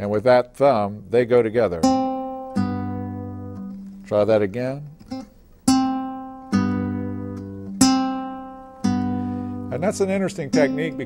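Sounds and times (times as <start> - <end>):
fingerstyle acoustic guitar chords: 0.7 - 11.0.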